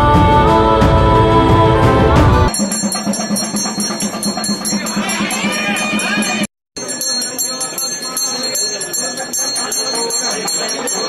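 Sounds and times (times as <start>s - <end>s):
bell rung rapidly: 2.5s - 11.0s
murmur of voices: 4.6s - 11.0s.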